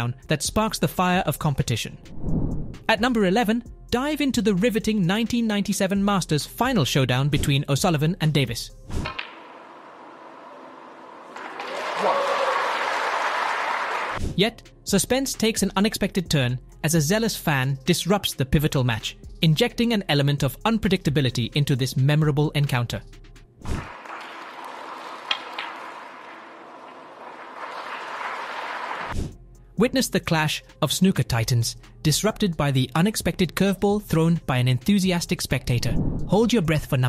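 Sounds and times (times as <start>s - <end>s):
crowd applause: 9.9s - 14.2s, 23.8s - 29.2s.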